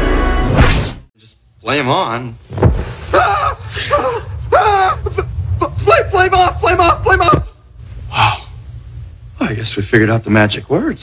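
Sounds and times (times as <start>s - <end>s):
low rumble: 2.6s - 9.4s.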